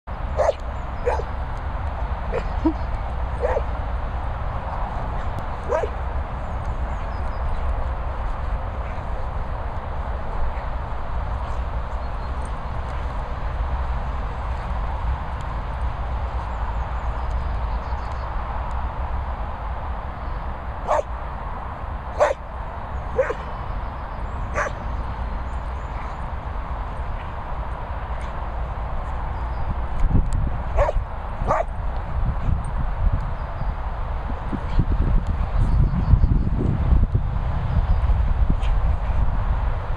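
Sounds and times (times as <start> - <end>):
dog barking: 0.4 - 1.3, 3.4 - 3.7, 5.7 - 6.0, 20.9 - 21.1, 22.2 - 22.4, 23.2 - 23.4, 24.5 - 24.8, 30.8 - 31.7.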